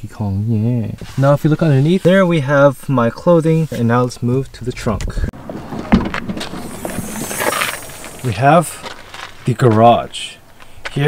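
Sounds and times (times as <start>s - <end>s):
brief rushing hiss: 6.4s - 8.8s.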